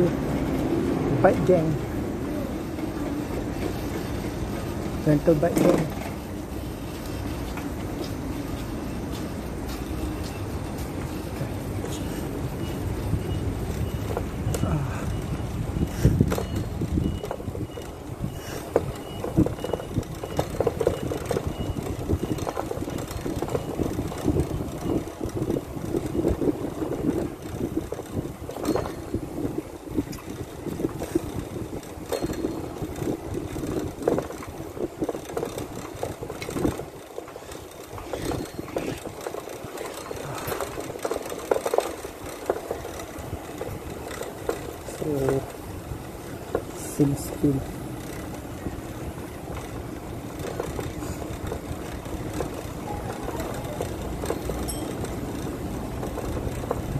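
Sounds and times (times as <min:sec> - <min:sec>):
bicycle rolling on pavement: 0:00.0 - 0:56.9.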